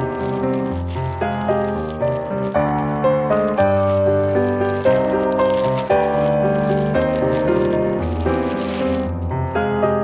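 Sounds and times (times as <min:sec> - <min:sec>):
plastic packaging crinkling: 0:00.0 - 0:10.0
solo piano music: 0:00.0 - 0:10.0.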